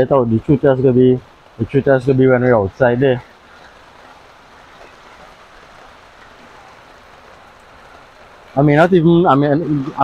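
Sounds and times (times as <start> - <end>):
steady rain falling: 0.0 - 10.0.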